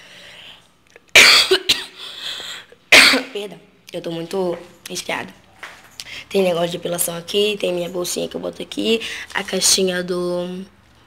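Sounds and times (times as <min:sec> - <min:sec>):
woman coughing: 0:01.1 - 0:02.3, 0:02.9 - 0:03.4.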